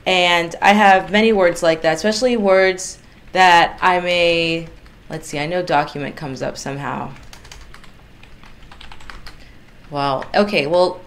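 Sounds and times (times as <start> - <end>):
fast keyboard typing: 2.9 - 6.0, 6.8 - 10.5.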